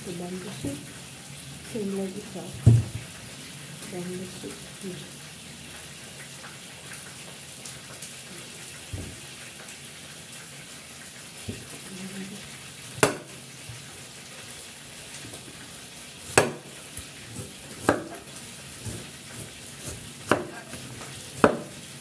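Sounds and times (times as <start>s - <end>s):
cleaver chopping on wooden block: 13.0s - 13.4s, 16.3s - 16.7s, 17.8s - 19.0s, 19.9s - 20.8s, 21.4s - 21.8s.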